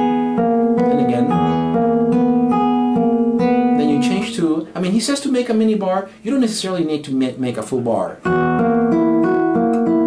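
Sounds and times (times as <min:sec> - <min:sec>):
fingerstyle classical guitar: 0:00.0 - 0:04.4, 0:07.6 - 0:10.0.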